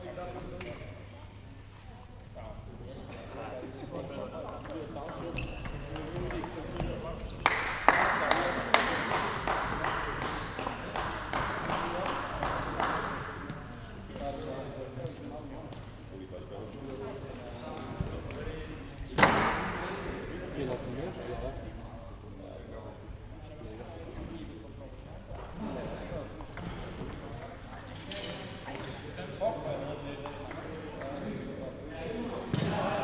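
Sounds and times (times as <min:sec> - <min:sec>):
rapid clapping: 0:07.4 - 0:13.1.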